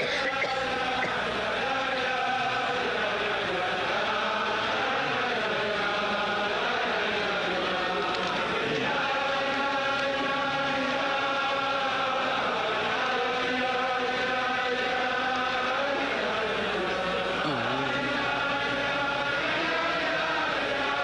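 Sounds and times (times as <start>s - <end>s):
crowd of men singing in unison: 0.0s - 21.0s.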